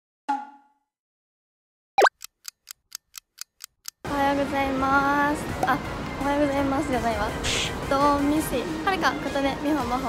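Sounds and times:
clock ticking: 0:02.0 - 0:04.0.

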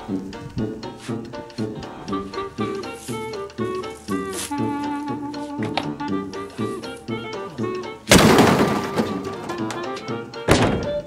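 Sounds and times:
background music: 0:00.0 - 0:11.0
dumpster lid slamming shut: 0:08.1 - 0:09.8, 0:10.4 - 0:11.0.

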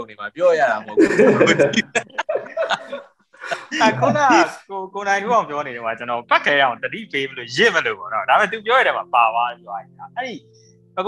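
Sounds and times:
men talking: 0:00.0 - 0:10.4
chuckling laughter: 0:00.9 - 0:04.5.

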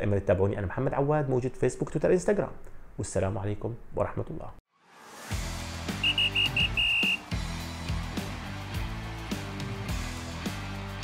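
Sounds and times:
bass-heavy music: 0:05.3 - 0:11.0
high whistle blasts: 0:05.9 - 0:07.4.

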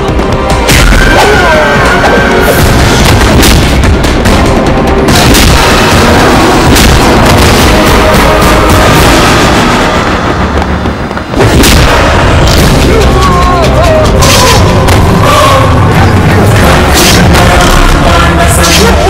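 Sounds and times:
action music score: 0:00.0 - 0:19.0
booms: 0:02.5 - 0:18.3
punch and impact hits: 0:02.6 - 0:04.2, 0:05.1 - 0:08.4, 0:11.3 - 0:12.9.

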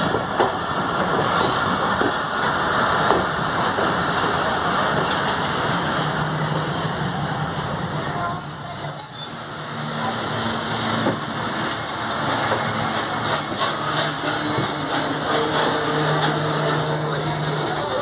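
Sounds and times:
crowd voices: 0:06.9 - 0:11.1, 0:12.0 - 0:18.0.

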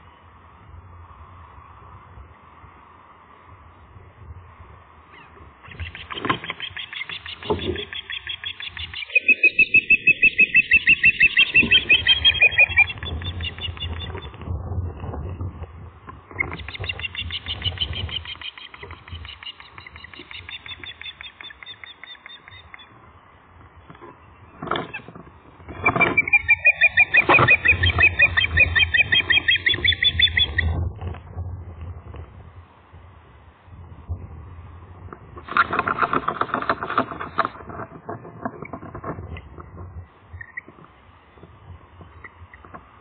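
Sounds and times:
ospreys whistled chirps: 0:05.7 - 0:14.3, 0:16.3 - 0:23.0, 0:25.7 - 0:30.8.

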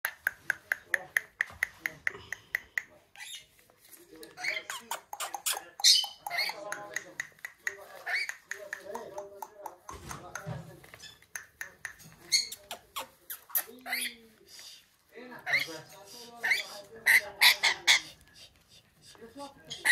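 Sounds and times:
lorikeet chirping and squawking: 0:04.4 - 0:06.7, 0:08.0 - 0:08.6, 0:12.3 - 0:14.4, 0:15.4 - 0:18.2, 0:19.7 - 0:19.9.

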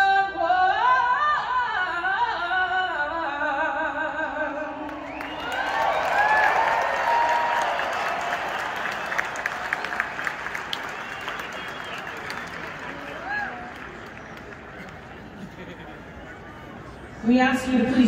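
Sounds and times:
stadium crowd cheering and applauding: 0:04.8 - 0:17.2
whoops and shouts: 0:05.1 - 0:10.0, 0:13.1 - 0:13.8.

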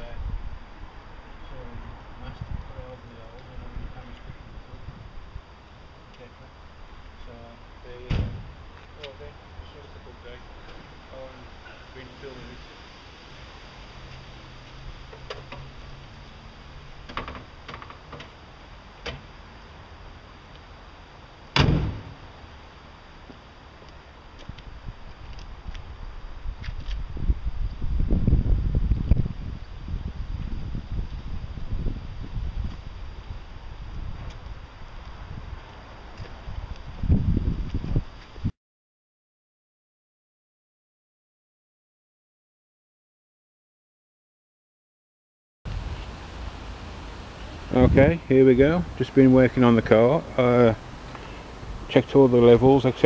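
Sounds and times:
car bonnet slamming shut: 0:08.0 - 0:08.5, 0:21.5 - 0:22.2.

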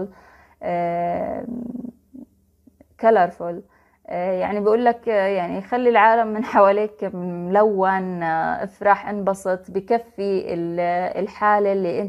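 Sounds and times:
woman speaking: 0:00.0 - 0:02.3, 0:03.0 - 0:12.0.

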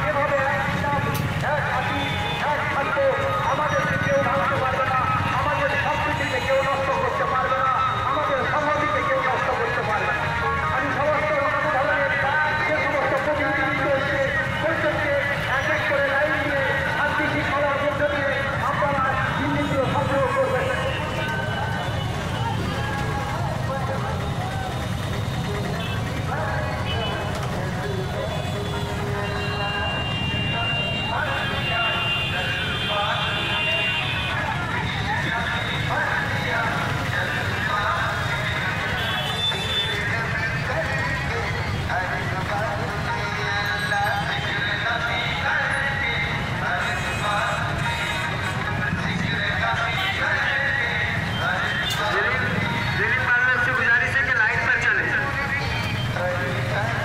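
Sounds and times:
motorcycle engines rumbling: 0:00.0 - 0:57.0
crowd shouting: 0:20.6 - 0:25.0.

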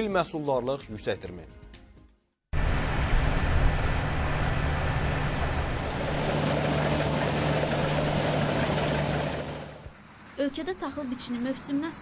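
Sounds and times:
combine harvester engine drone: 0:02.6 - 0:10.0.

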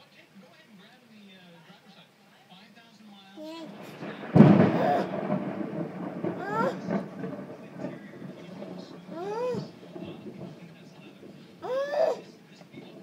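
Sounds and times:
thunderclap rumbling: 0:03.5 - 0:13.0.

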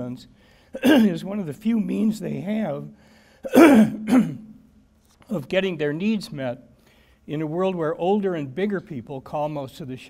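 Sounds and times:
man coughing: 0:00.8 - 0:01.2, 0:03.4 - 0:04.6.

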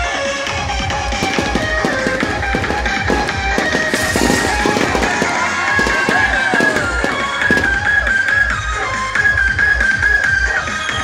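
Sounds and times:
fireworks bursting and crackling: 0:00.0 - 0:09.7
music with a steady beat: 0:00.0 - 0:11.0
sharp bangs: 0:01.0 - 0:08.7.

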